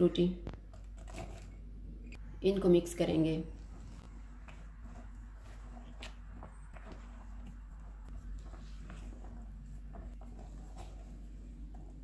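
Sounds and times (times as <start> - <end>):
low steady hum: 0.0 - 12.0
spatula scraping mixing bowl: 3.6 - 12.0.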